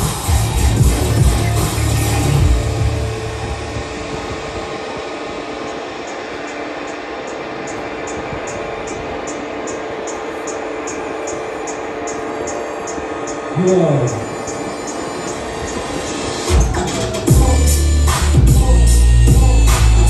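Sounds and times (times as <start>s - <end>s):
bass music: 0.0s - 5.1s, 16.5s - 20.0s
high ticks: 5.7s - 16.7s.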